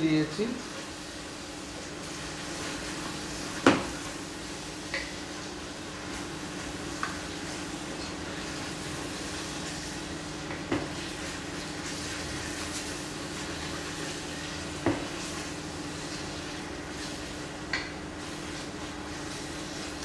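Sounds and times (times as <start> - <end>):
masala sizzling in a pot: 0.0 - 20.0.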